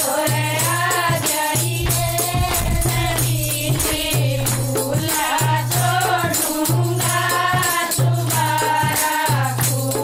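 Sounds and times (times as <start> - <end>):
women singing in chorus: 0.0 - 10.0
rattling percussion: 1.6 - 8.4.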